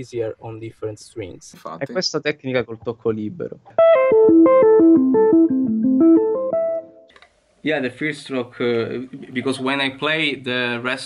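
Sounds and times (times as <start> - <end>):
electric guitar plucked notes: 3.7 - 7.1.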